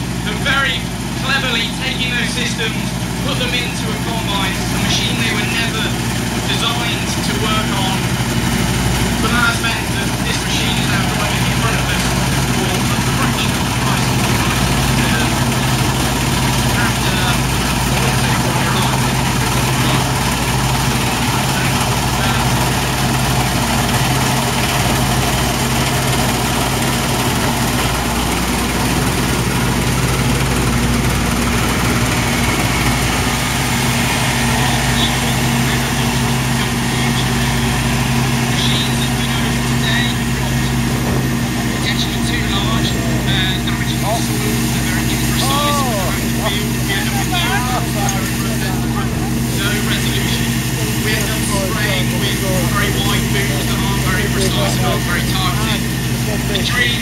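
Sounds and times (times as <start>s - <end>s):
combine harvester engine running: 0.0s - 57.0s.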